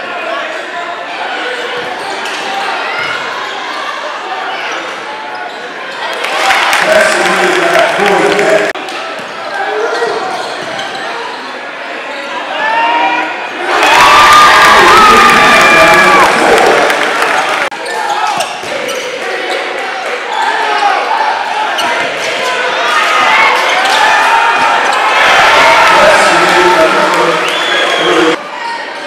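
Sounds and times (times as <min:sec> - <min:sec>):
crowd shouting and chatter: 0:00.0 - 0:29.0.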